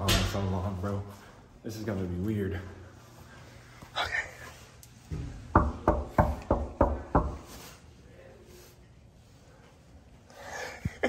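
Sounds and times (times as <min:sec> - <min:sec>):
knocking on wooden door: 0:05.5 - 0:07.4.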